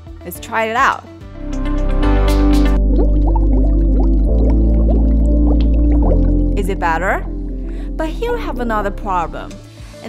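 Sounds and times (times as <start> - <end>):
muffled background music: 0.0 - 10.0
bubbling blips: 1.6 - 9.3.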